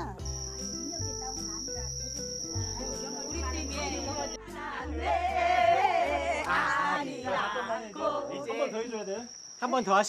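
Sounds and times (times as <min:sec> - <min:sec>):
cricket trill: 0:00.0 - 0:04.4, 0:05.4 - 0:10.0
soft background music: 0:00.0 - 0:07.4.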